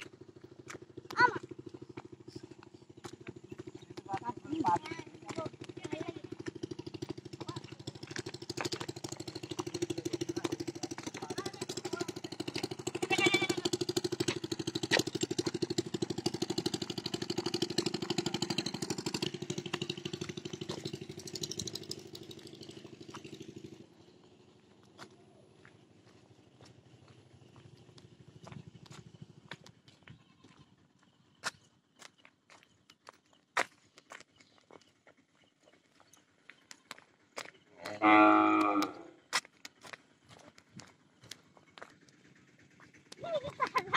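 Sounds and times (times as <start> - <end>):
motor engine running: 0.0 - 43.9
voices: 1.1 - 15.7, 16.5 - 20.9, 37.4 - 39.2, 42.6 - 43.9.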